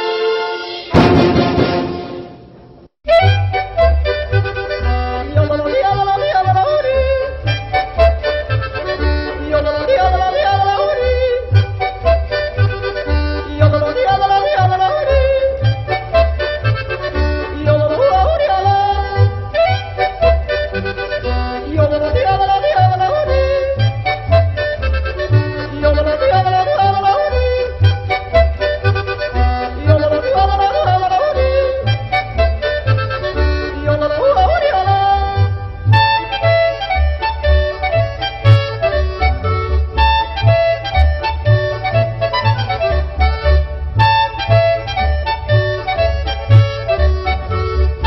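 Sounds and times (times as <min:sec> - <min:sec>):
accordion: 0:00.0 - 0:48.0
bass notes: 0:01.0 - 0:48.0
person yodeling: 0:21.6 - 0:23.8, 0:25.8 - 0:27.7, 0:29.8 - 0:31.9, 0:33.9 - 0:35.4.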